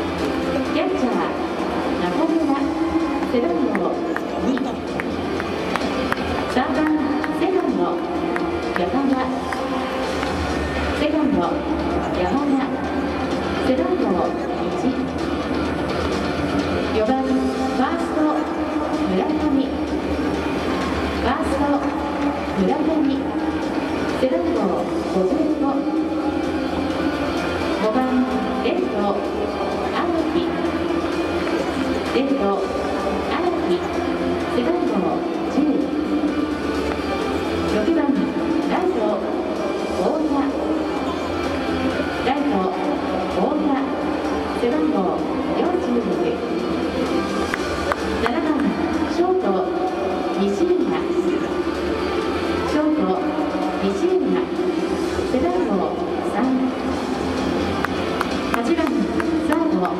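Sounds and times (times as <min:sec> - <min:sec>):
announcer echoing over loudspeakers: 0:00.0 - 0:15.4, 0:16.7 - 0:59.9
background music: 0:00.0 - 0:59.9.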